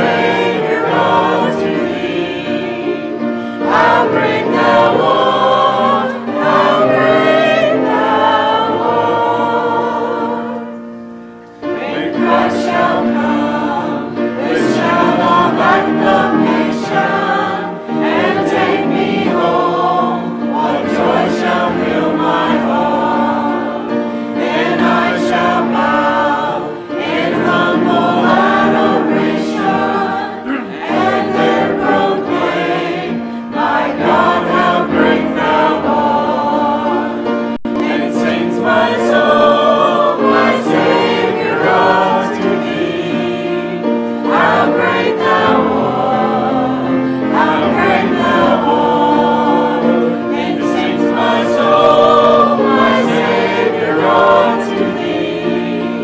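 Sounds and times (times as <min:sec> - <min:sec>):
congregation and choir singing hymn: 0:00.0 - 0:56.0.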